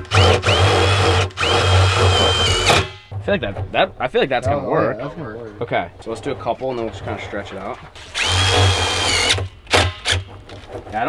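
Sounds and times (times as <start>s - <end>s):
cordless drill whining: 0.0s - 2.8s, 8.0s - 10.2s.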